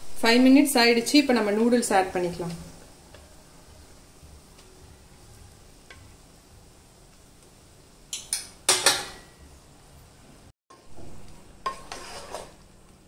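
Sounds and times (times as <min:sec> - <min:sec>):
vegetables sizzling in a pan: 0:00.0 - 0:13.0
utensils knocking against a pan: 0:08.1 - 0:09.4.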